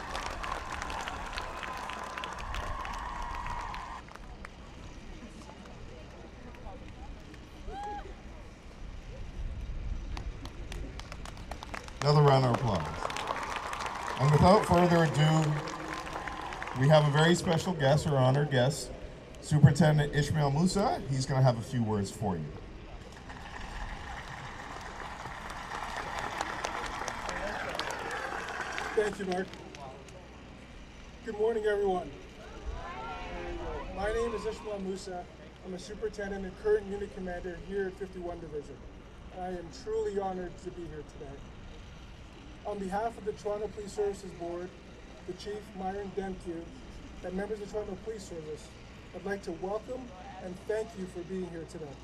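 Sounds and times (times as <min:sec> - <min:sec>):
small crowd applauding: 0:00.0 - 0:08.0, 0:10.1 - 0:18.6, 0:23.1 - 0:30.3.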